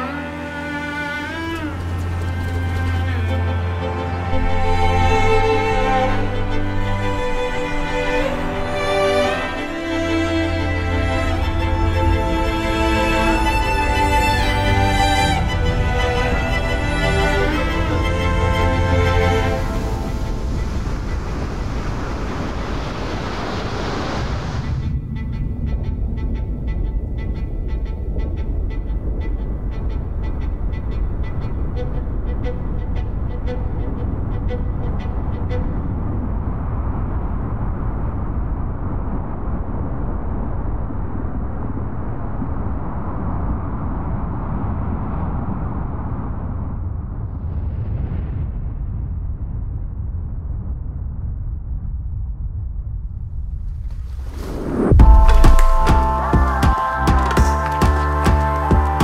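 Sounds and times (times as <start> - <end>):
loud rushing wash: 0.0 - 47.7, 53.9 - 59.0
deep steady rumble: 0.0 - 59.0.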